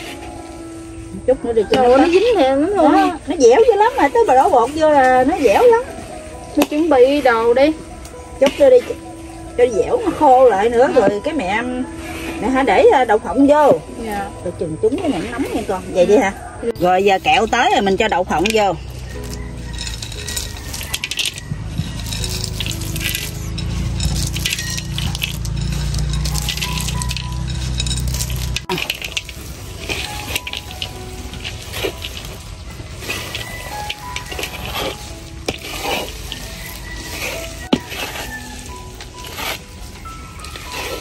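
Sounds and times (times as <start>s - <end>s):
background music: 0.0s - 41.0s
spatula scraping a wok: 10.3s - 13.0s, 15.0s - 41.0s
peanuts pattering into a wok: 17.1s - 41.0s.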